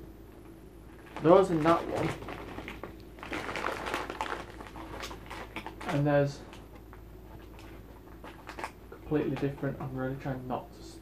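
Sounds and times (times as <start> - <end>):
sweet bag crinkling: 0.9 - 9.5.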